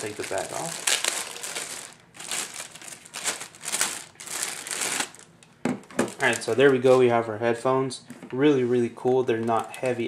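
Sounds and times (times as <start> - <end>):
plastic bag crinkling: 0.0 - 7.2, 9.0 - 10.0.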